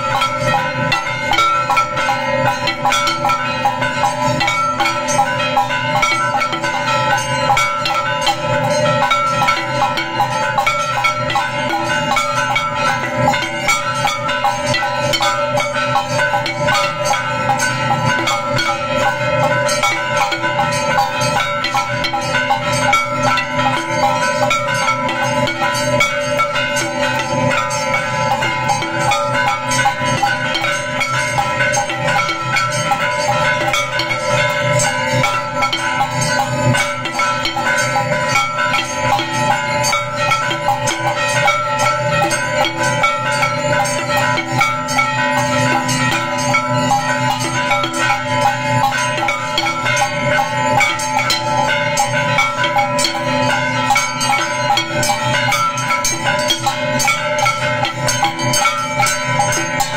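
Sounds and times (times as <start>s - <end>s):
hand percussion rapid strikes: 0.0s - 59.9s
temple bells ringing: 0.0s - 59.9s.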